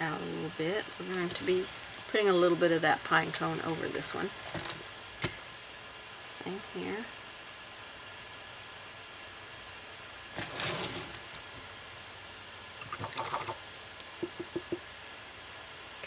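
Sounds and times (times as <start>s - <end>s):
brush tapping container rim: 14.2s - 14.8s.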